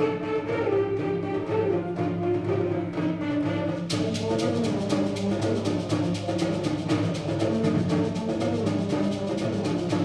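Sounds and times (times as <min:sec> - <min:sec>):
steady percussion strokes: 0:00.0 - 0:10.0.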